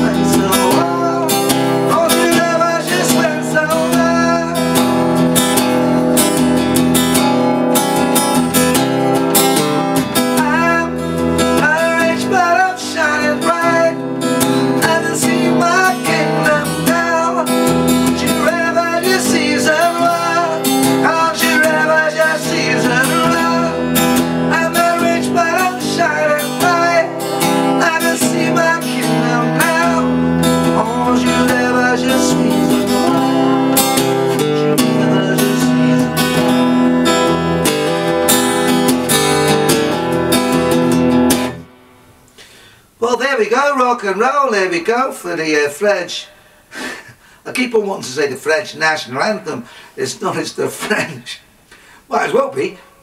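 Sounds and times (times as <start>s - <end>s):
acoustic guitar strummed and picked: 0.0s - 52.7s.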